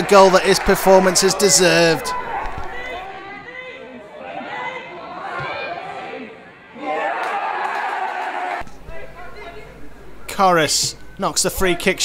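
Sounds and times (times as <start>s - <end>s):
crowd shouting and chatter: 0.0s - 10.3s.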